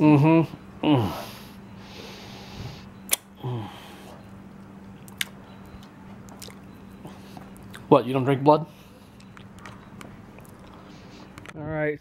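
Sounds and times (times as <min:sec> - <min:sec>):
faint steady hum: 0:00.0 - 0:12.0
person humming mm: 0:03.4 - 0:04.0
mouth smacking: 0:05.0 - 0:05.4, 0:06.2 - 0:07.9, 0:09.0 - 0:11.6.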